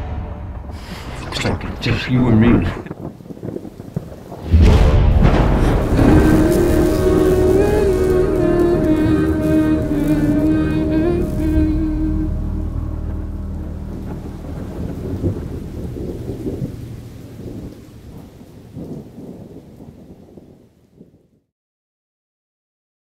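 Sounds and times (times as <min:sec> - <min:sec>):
thunder rumble: 0:00.0 - 0:21.4
rain: 0:00.8 - 0:21.5
musical chord: 0:05.8 - 0:17.7.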